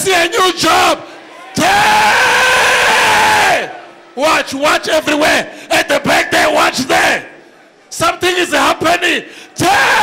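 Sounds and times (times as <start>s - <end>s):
congregation crying out: 0.0s - 10.0s
man shouting into a microphone: 0.0s - 10.0s.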